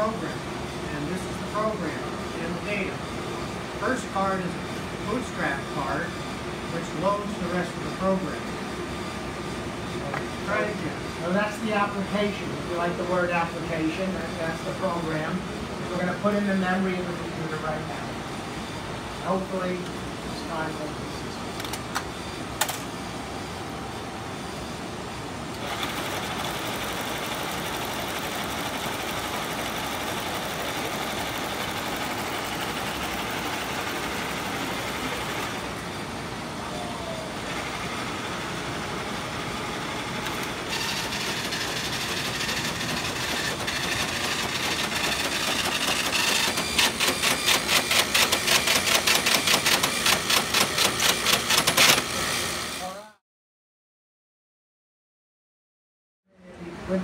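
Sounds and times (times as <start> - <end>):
card reader whir and clatter: 21.6 - 23.0, 25.5 - 35.9, 39.9 - 52.8.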